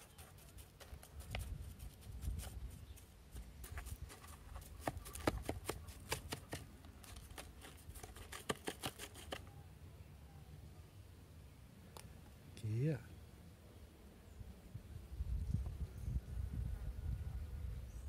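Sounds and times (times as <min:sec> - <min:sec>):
stick scraping through sand: 0:00.0 - 0:09.4.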